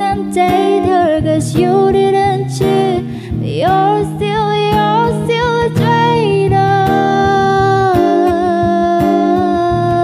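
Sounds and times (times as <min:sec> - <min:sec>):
acoustic guitar: 0:00.0 - 0:10.0
woman singing long vowel: 0:00.0 - 0:10.0.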